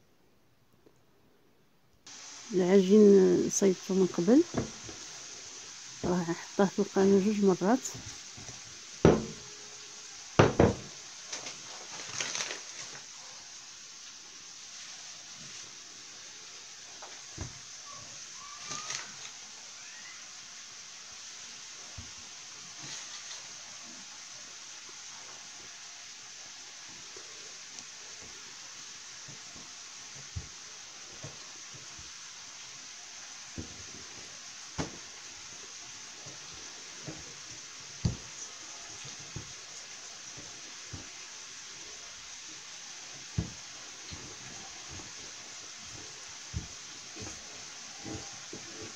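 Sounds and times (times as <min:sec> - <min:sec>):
faint hiss: 0:00.0 - 0:48.9
soft taps and thumps of dough: 0:04.4 - 0:05.0, 0:07.9 - 0:09.5, 0:10.4 - 0:10.9, 0:34.8 - 0:35.1, 0:36.2 - 0:38.4, 0:40.3 - 0:41.3, 0:43.2 - 0:48.9
knocks on a table: 0:09.1 - 0:09.4, 0:10.4 - 0:10.9.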